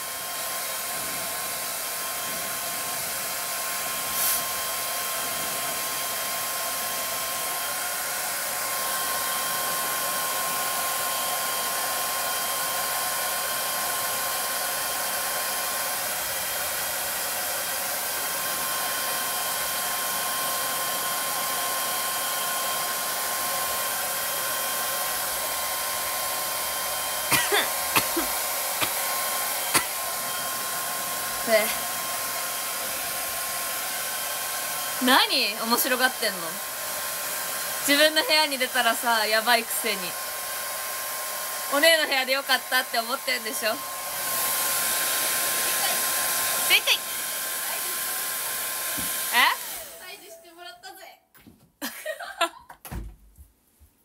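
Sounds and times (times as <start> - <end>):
hair dryer blowing: 0.0 - 50.7, 51.8 - 53.0.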